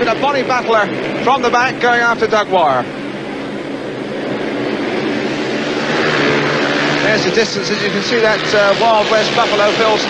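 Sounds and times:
motorcycle engines racing: 0:00.0 - 0:10.0.

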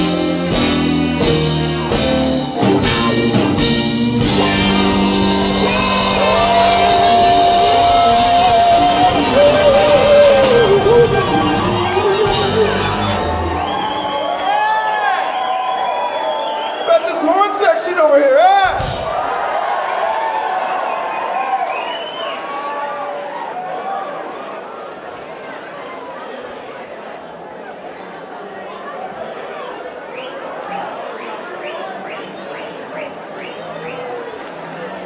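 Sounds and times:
funk band playing: 0:00.0 - 0:14.2, 0:18.7 - 0:19.1
crowd cheering and whooping: 0:04.2 - 0:17.3, 0:18.6 - 0:24.6.

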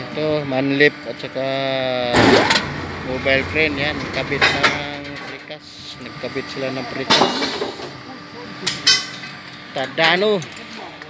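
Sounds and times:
hoist elevator humming: 0:01.5 - 0:11.0
loud burst of noise: 0:02.1 - 0:04.5.

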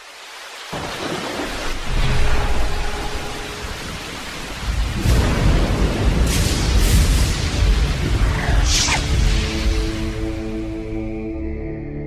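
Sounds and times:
steady rain hiss: 0:00.0 - 0:11.0
rolling thunder: 0:00.8 - 0:10.4.

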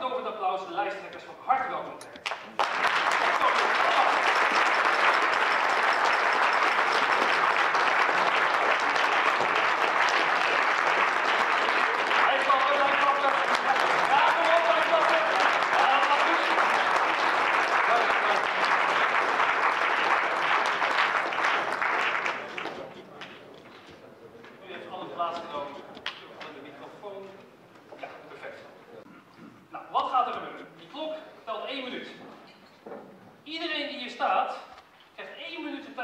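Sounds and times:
audience applauding: 0:02.2 - 0:23.4.

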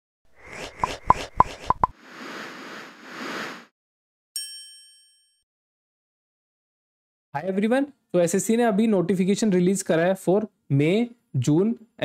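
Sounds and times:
bright chime ding: 0:04.4 - 0:05.4.

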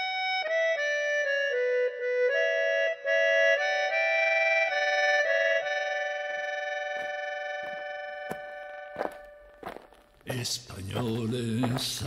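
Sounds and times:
held accordion chord: 0:00.0 - 0:09.9.

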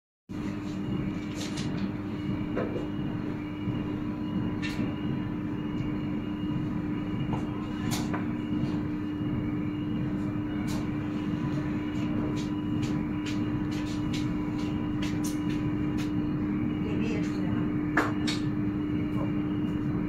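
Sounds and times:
steady mechanical hum: 0:00.3 - 0:20.0.

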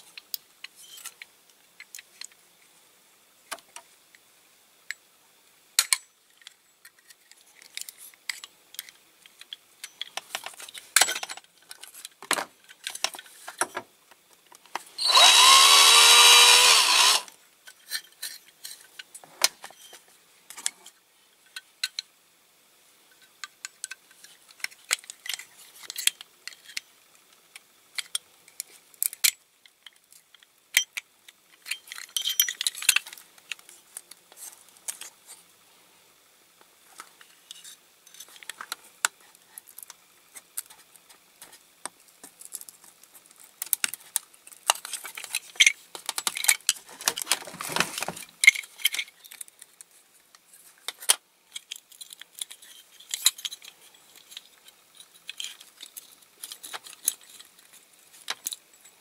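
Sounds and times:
metal tool scraping metal toy: 0:15.0 - 0:18.8.

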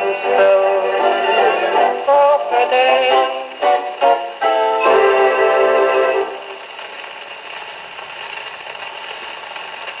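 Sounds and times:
record surface hiss and crackle: 0:00.0 - 0:10.0.

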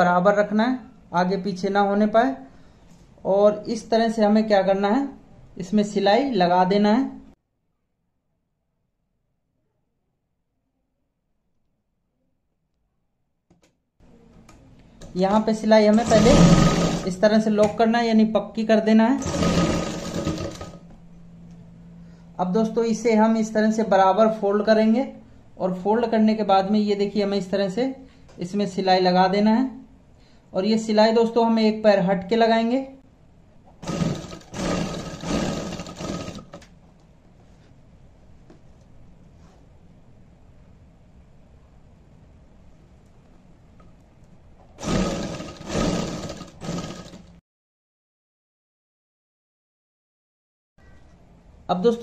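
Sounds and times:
sewing machine stitching: 0:15.8 - 0:17.3, 0:19.2 - 0:20.8, 0:33.8 - 0:36.7, 0:44.8 - 0:47.4.

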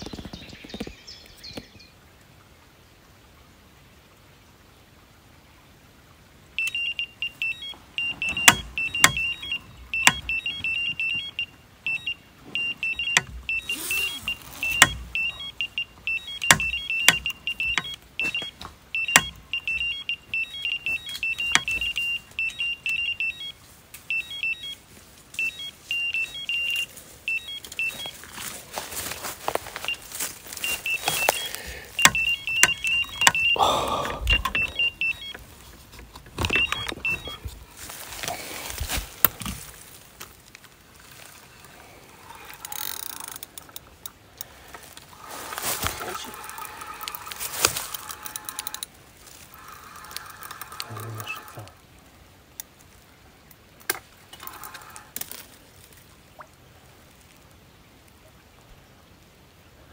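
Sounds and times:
sharp clicks: 0:06.6 - 0:23.4, 0:30.6 - 0:35.4, 0:45.9 - 0:48.9, 0:49.6 - 0:51.7
bite alarm beeping rapidly: 0:06.6 - 0:24.8, 0:25.4 - 0:28.2, 0:29.8 - 0:35.4, 0:36.4 - 0:37.4, 0:45.3 - 0:48.8, 0:49.5 - 0:51.7
rustling: 0:23.2 - 0:33.5, 0:34.4 - 0:43.8, 0:44.6 - 0:51.8.

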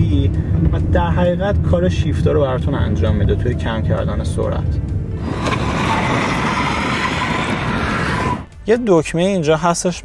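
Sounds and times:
car driving past on asphalt: 0:03.2 - 0:08.6.

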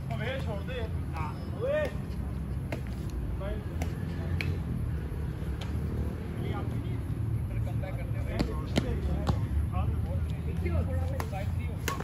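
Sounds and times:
racket hitting shuttlecock: 0:03.7 - 0:04.7, 0:11.2 - 0:12.0.

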